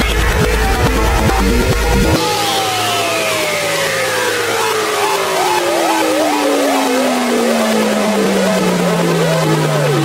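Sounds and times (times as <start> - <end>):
synth tone falling in pitch: 0.0 - 10.0
short gliding synth notes: 0.3 - 10.0.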